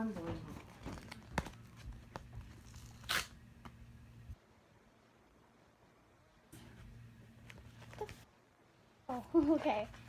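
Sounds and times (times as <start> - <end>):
paper envelope rustling: 0.5 - 3.3
envelope tearing: 2.6 - 3.4.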